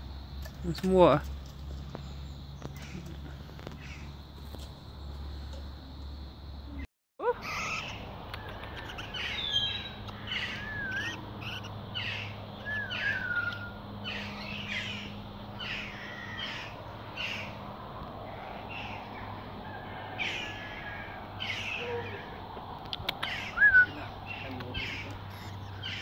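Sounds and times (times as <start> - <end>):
short harsh bird calls: 7.4 - 17.6, 23.1 - 26.0
whistled gliding bird notes: 7.5 - 14.9, 23.2 - 26.0.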